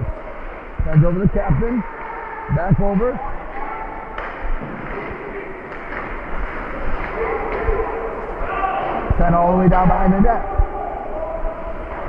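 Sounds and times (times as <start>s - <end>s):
voices in an arena: 0.0s - 12.0s
puck and sticks clacking: 4.0s - 10.1s.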